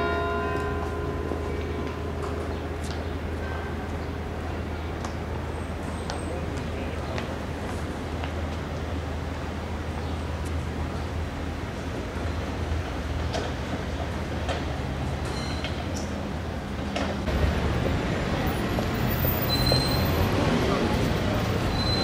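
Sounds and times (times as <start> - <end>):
low traffic rumble: 0.0 - 22.0.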